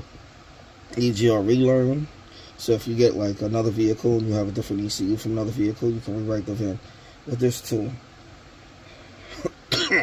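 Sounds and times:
man coughing: 9.3s - 10.0s.

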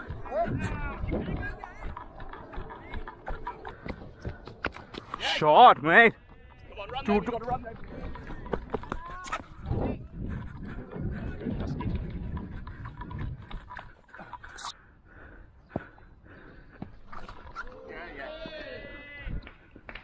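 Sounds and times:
wind rumbling on microphone: 0.0s - 5.2s, 7.5s - 14.4s
footsteps and knocks: 0.0s - 9.7s.

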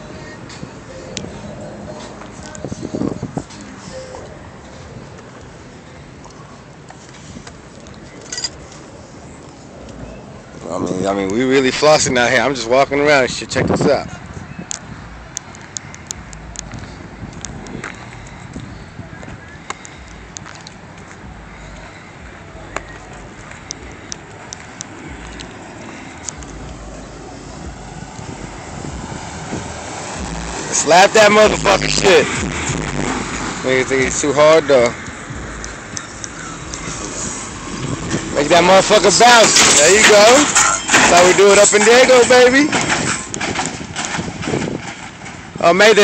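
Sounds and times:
wind rumbling on microphone: 0.0s - 5.6s, 8.6s - 34.3s, 34.9s - 40.0s, 42.6s - 46.0s
car engine and tyre noise: 0.0s - 46.0s
outdoor noise: 0.0s - 46.0s.

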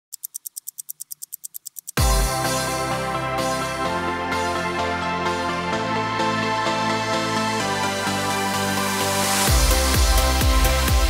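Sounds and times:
rapid clock ticking: 0.1s - 2.0s
intro music: 1.9s - 11.0s.

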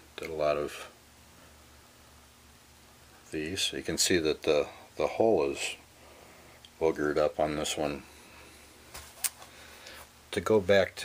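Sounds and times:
faint handling noise: 8.0s - 10.9s.

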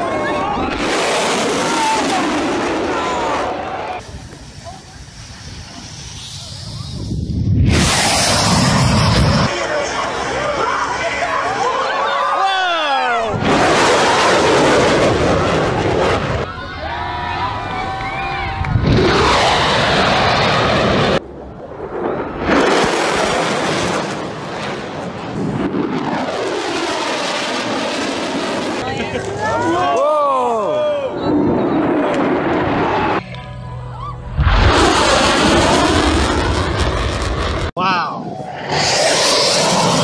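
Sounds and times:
crowd voices: 0.0s - 7.2s, 8.5s - 19.7s, 28.8s - 36.1s
jet engine whine: 0.0s - 12.4s, 13.3s - 29.0s, 30.9s - 40.0s
fighter jet roar: 0.0s - 28.9s, 30.7s - 33.2s, 34.2s - 40.0s.

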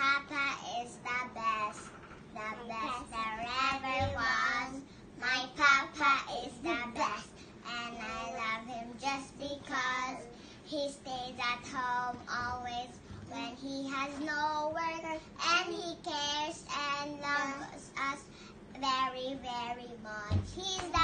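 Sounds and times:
girl singing: 0.0s - 21.0s.

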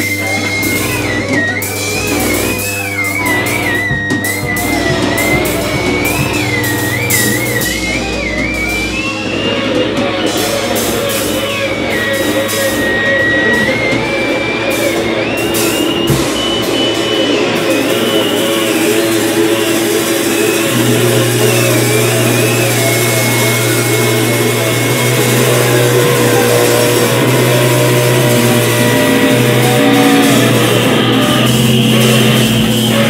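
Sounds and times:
distorted electric guitar noise music: 0.0s - 33.0s
high wavering whine: 0.0s - 33.0s.

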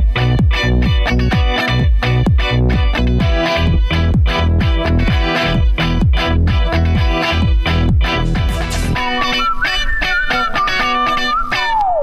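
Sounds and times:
electric guitar music: 0.0s - 12.0s.

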